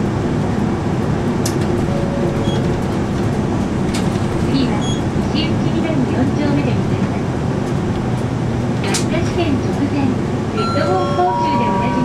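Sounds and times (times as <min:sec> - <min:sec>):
bus engine and road noise: 0:00.0 - 0:12.0.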